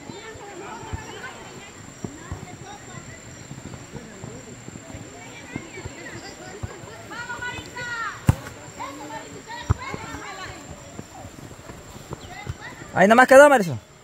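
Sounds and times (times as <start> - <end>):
distant voices calling: 0.0 - 14.0
football kick thuds: 7.4 - 8.7.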